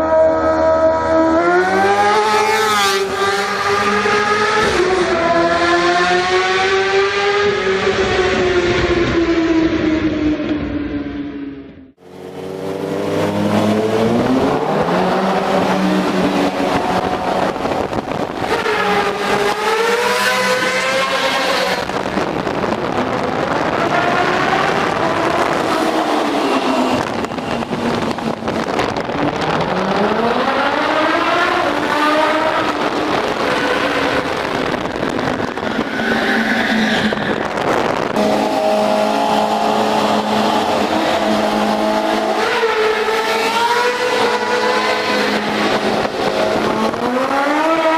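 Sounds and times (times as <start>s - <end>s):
motorcycle engine revving: 0.0s - 10.8s, 11.5s - 35.9s, 37.1s - 47.9s.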